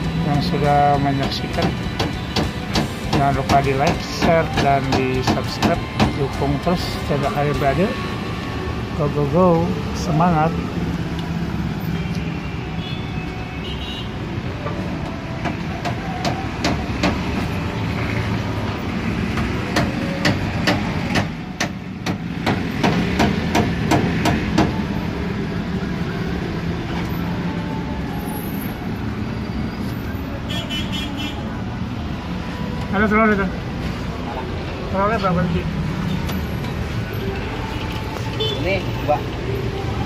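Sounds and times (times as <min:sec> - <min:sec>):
knocks and taps on wood: 0:01.2 - 0:06.2.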